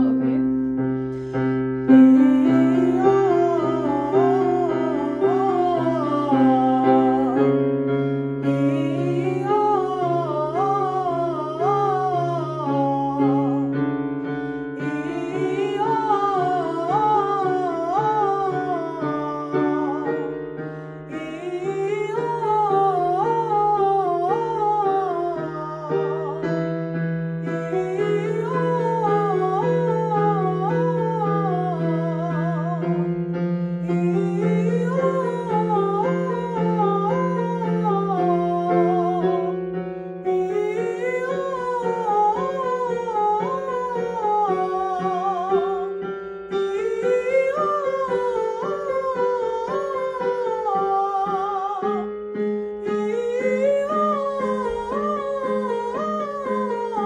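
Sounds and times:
held piano chords: 0.0 - 57.0.

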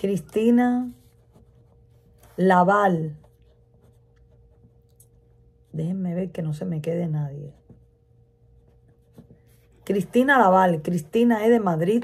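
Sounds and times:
person speaking: 0.0 - 4.5, 5.6 - 7.8, 9.5 - 12.0.

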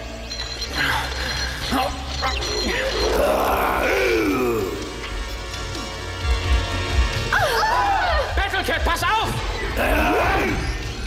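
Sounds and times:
dramatic background music: 0.0 - 11.0
man groaning and grunting: 3.0 - 5.1, 9.8 - 10.8.

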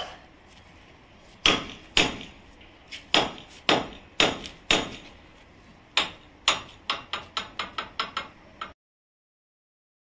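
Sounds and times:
hammer striking steel chisel: 1.4 - 2.4, 3.1 - 5.1, 6.0 - 8.8.

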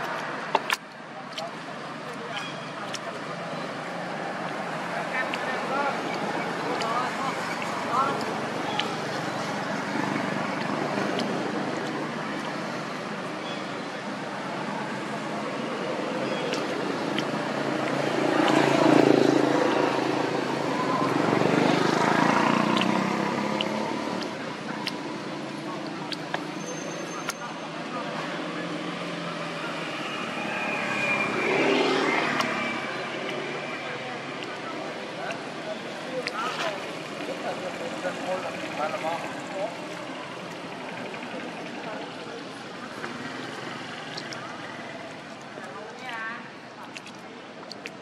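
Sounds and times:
distant voices: 0.0 - 48.0
traffic: 0.0 - 48.0
passing motor vehicle engine: 3.0 - 26.6, 27.4 - 45.8.

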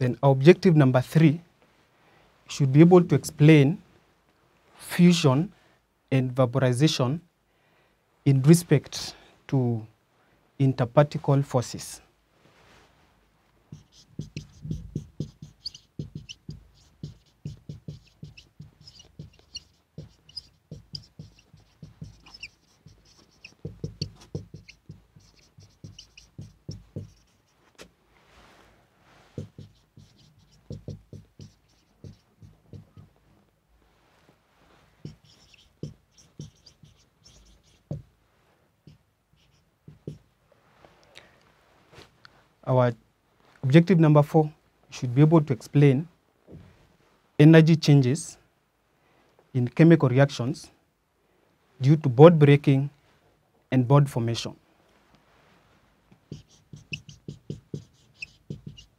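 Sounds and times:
marker pen writing on whiteboard: 13.7 - 27.9, 29.3 - 33.2, 35.0 - 38.2, 38.8 - 40.3, 56.1 - 58.9.

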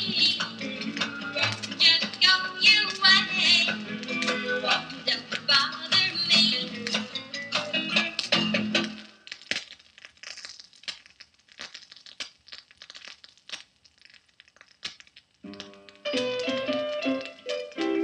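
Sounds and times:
rockabilly song with singing and guitar: 0.0 - 9.1
record stylus crackle and clicks: 0.0 - 18.0.

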